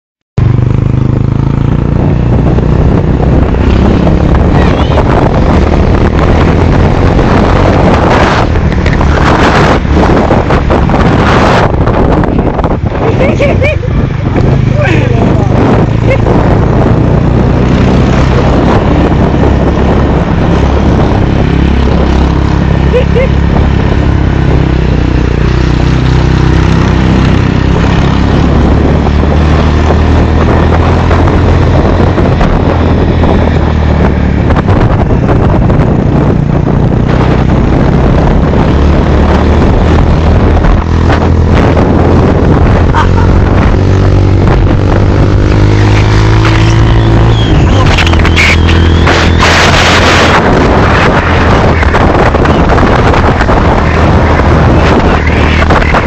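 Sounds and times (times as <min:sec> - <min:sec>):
motorcycle engine running: 0:00.4 - 0:56.0
wind buffeting microphone: 0:00.4 - 0:56.0.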